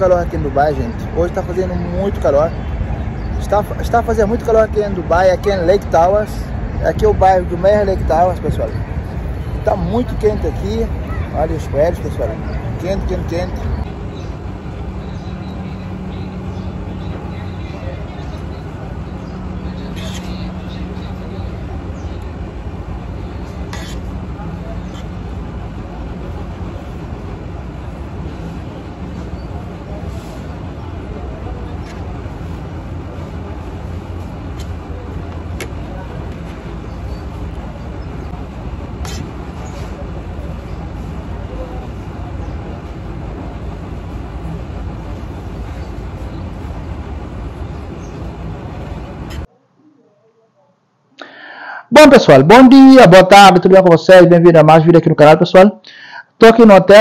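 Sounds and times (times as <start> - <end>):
traffic: 0.0 - 49.6.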